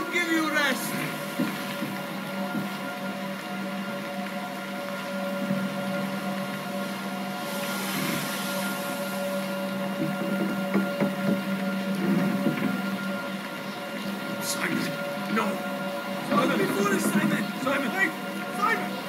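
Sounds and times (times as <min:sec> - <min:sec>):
low drone film score: 0:00.0 - 0:19.0
hiss: 0:07.5 - 0:09.2.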